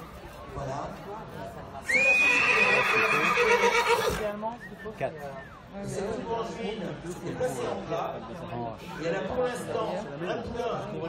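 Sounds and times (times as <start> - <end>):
horse whinnying: 1.9 - 4.3.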